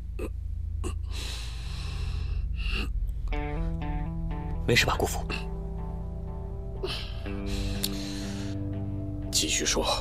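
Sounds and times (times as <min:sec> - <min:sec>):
low dramatic music drone: 0:00.0 - 0:10.0
man gasping: 0:06.8 - 0:08.6.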